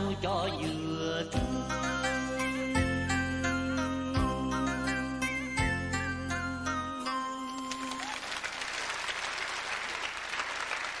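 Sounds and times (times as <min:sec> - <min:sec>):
audience applause: 0:07.7 - 0:11.0.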